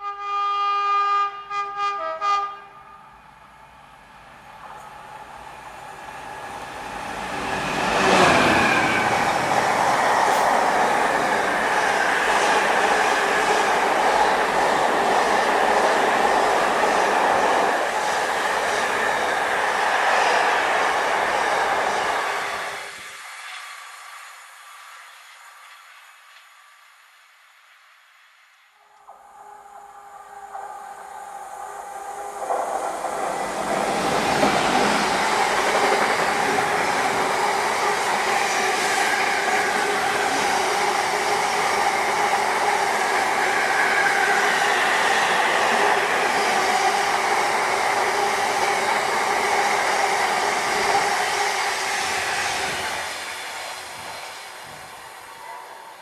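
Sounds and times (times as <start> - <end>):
diesel locomotive passing: 1.2 - 27.2, 28.8 - 56.0
train wheels on rails: 4.0 - 28.2, 28.9 - 56.0.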